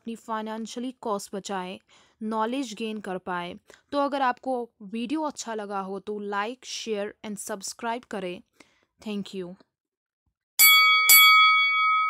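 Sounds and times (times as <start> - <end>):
bell ding: 10.6 - 12.0.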